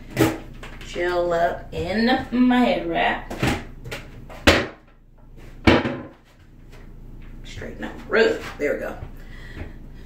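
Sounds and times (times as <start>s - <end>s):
sharp knocks: 5.6s - 6.2s.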